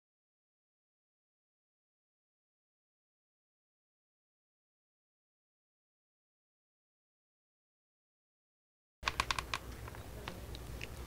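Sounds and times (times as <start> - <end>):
fingernails tapping phone screen: 9.0 - 11.0.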